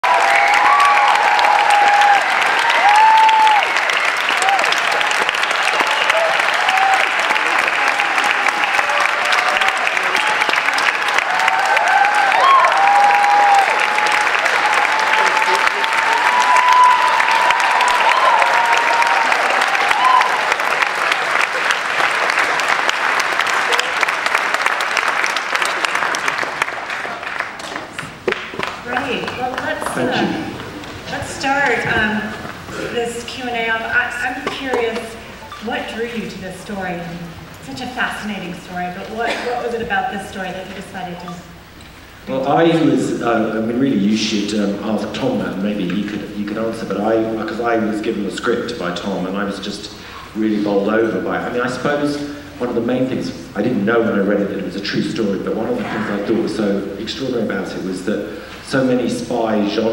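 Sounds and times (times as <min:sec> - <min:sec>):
whoops and cheering voices: 0:00.0 - 0:21.2
audience applauding: 0:00.0 - 0:36.7.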